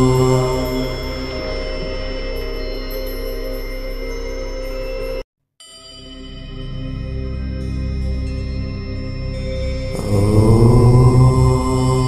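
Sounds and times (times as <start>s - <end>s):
low drone: 0.0s - 5.2s, 6.1s - 12.0s
bell-like ringing tones: 0.0s - 7.3s.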